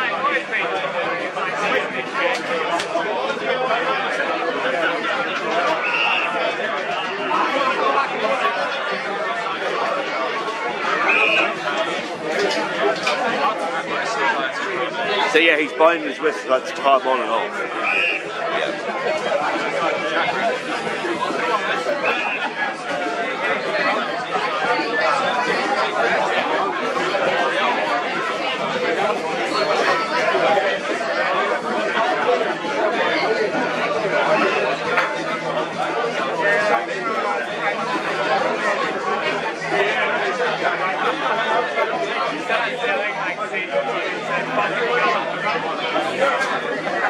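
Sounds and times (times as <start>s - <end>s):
crowd chatter: 0.0s - 47.0s.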